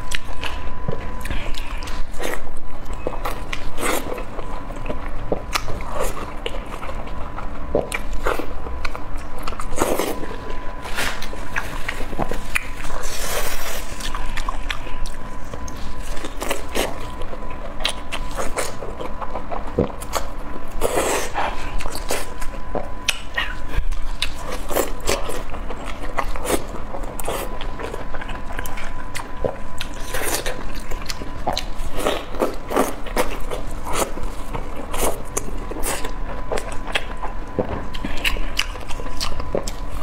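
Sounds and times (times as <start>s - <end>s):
biting and chewing: 0.0s - 40.0s.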